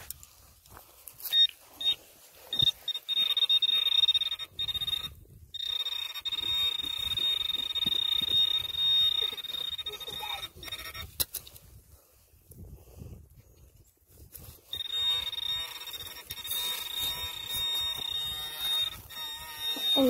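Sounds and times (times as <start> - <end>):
short high beeps: 1.3 - 11.2, 14.7 - 20.0
steady high-pitched tone: 14.7 - 20.0.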